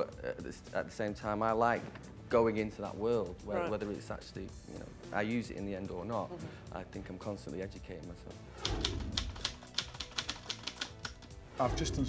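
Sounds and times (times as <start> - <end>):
typewriter keys clacking: 8.7 - 11.4.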